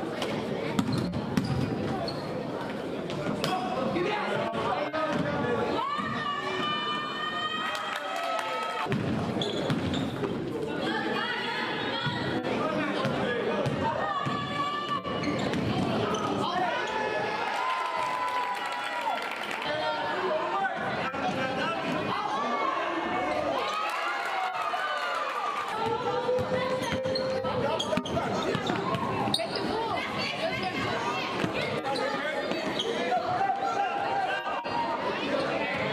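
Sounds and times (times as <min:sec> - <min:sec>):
voices in gym: 0:00.0 - 0:35.9
basketball bouncing on wooden court: 0:00.8 - 0:01.8, 0:08.9 - 0:10.3, 0:13.0 - 0:16.0.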